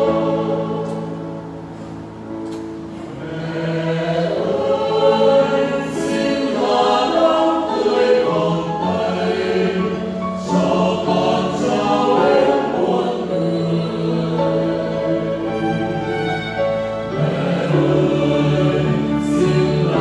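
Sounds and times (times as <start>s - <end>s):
choir singing a hymn: 0.0s - 20.0s.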